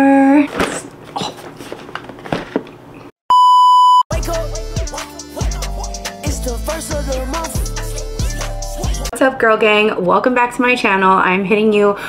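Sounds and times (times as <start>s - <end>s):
test tone beep: 3.3s - 4.0s.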